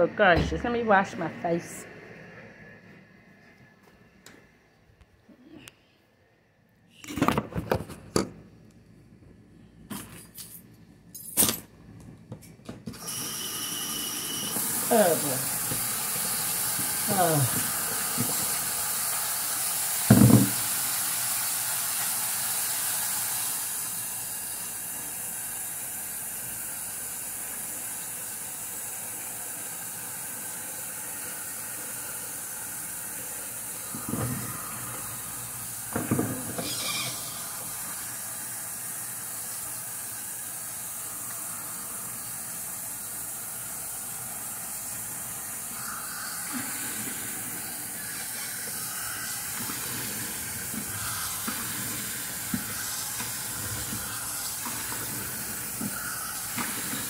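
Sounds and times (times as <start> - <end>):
sink tap running: 12.9 - 25.2, 26.6 - 57.0.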